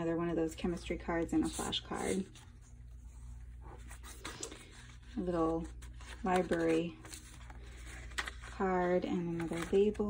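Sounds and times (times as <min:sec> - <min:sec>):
low steady hum: 0:00.0 - 0:10.0
paper pages rustling: 0:01.2 - 0:10.0.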